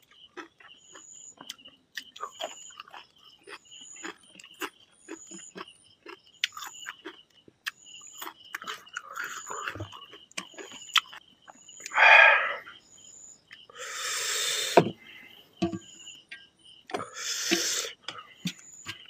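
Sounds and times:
lip smacks and chewing: 0.0s - 11.2s
night creatures chirping: 8.6s - 16.2s.

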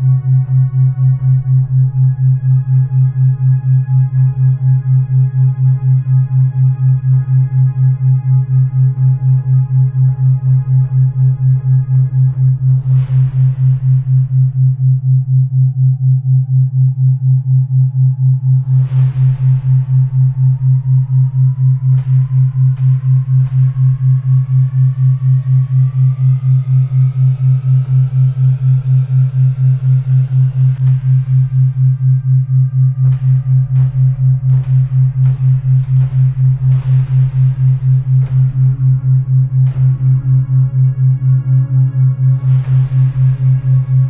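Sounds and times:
loud low pulsing hum: 0.0s - 44.0s.

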